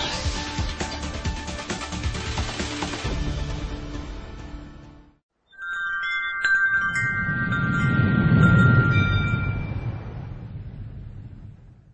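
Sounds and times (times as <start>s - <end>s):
bell-like logo jingle: 5.5s - 10.1s.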